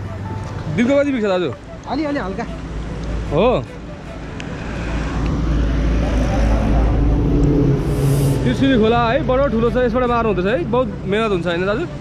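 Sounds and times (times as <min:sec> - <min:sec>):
vehicle engine approaching: 0:02.8 - 0:10.9
low steady rumble: 0:06.1 - 0:10.6.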